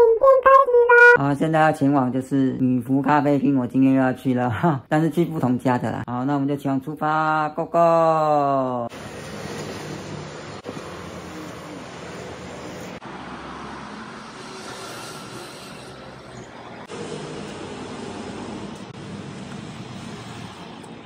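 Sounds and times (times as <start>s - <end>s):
street traffic noise: 8.8s - 21.0s
motorbike passing: 8.9s - 21.0s.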